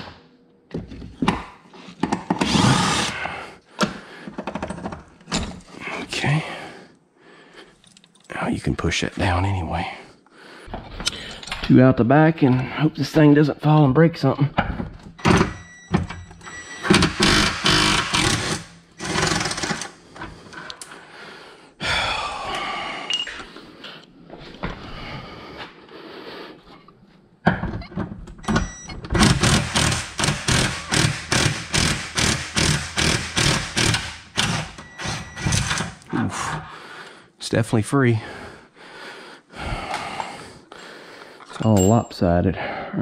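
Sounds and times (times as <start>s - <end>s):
hand tools knocking on bolts: 29.1s - 35.8s.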